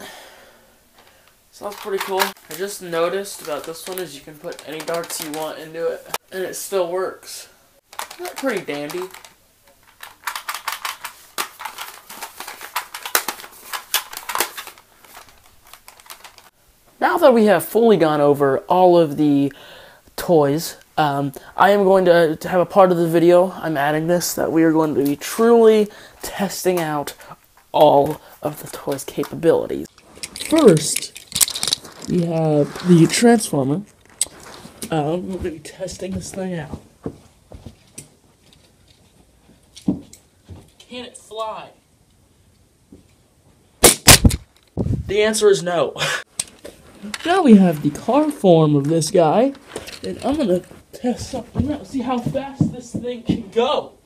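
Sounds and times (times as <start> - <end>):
plastic toy gun clicks and rattles: 1.6 - 5.7, 7.9 - 16.5, 28.8 - 32.2
soft footsteps on carpet: 34.3 - 40.8, 50.3 - 53.6.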